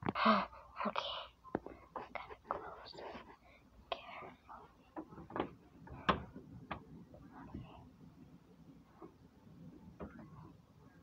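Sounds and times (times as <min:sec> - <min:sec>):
person whispering: 0:00.0 - 0:04.8.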